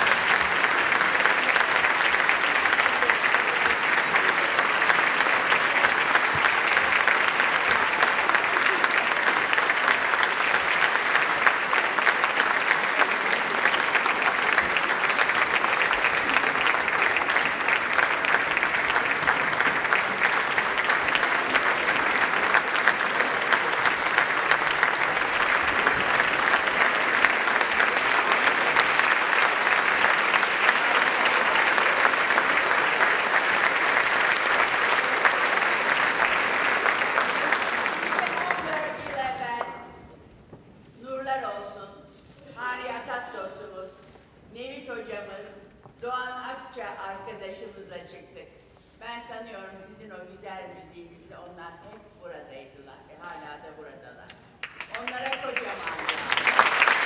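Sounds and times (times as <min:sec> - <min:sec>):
audience applauding: 0:00.0 - 0:39.9, 0:54.6 - 0:57.0.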